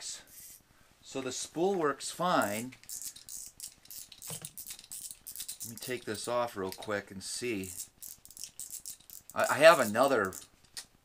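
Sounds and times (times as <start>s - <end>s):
fishing reel clicks and scrapes: 2.4s - 6.9s, 7.6s - 10.5s.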